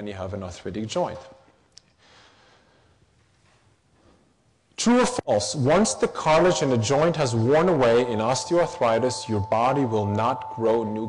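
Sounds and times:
person speaking: 4.8 - 11.0.

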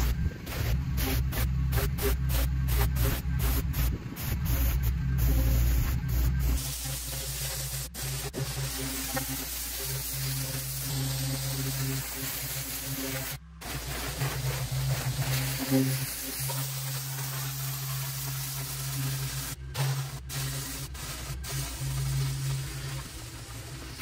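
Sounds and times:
low hum: 0.0 - 24.0
pressure washer spraying concrete: 0.0 - 24.0.

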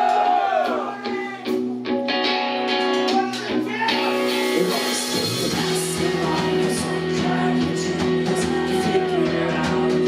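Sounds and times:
drums: 0.0 - 10.0
electric guitars strumming chords: 1.0 - 10.0.

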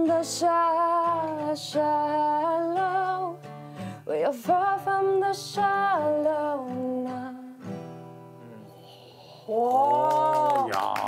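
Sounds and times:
woman singing: 0.0 - 7.7
acoustic guitar strumming: 0.0 - 8.8
people clapping: 9.2 - 11.0.

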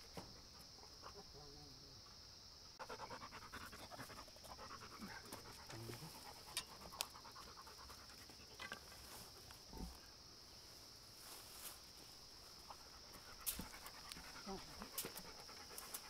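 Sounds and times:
high insect drone: 0.0 - 16.0
dog panting: 2.8 - 8.5, 12.6 - 16.0.

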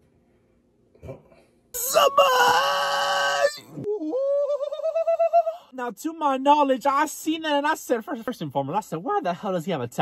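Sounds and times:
man wailing: 1.8 - 5.7.

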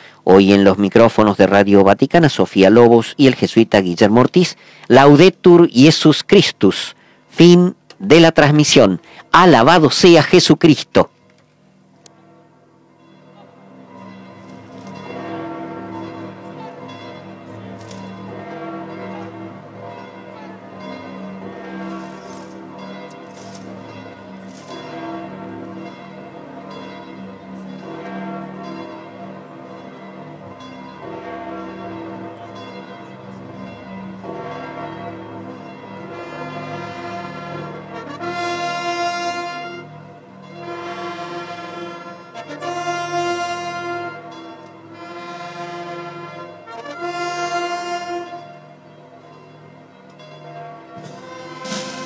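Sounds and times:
church bells pealing: 12.2 - 52.0
military wind band chord: 36.1 - 48.7, 51.0 - 52.0.

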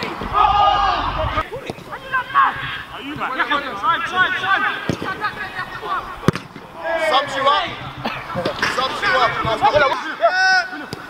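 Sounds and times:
players' voices calling: 0.0 - 11.0.

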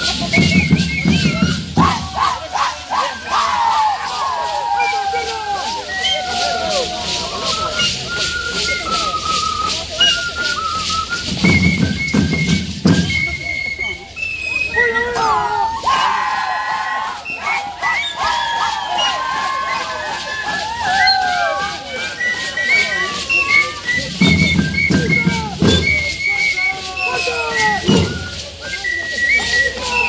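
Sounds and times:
flutes playing melody: 0.0 - 30.0.

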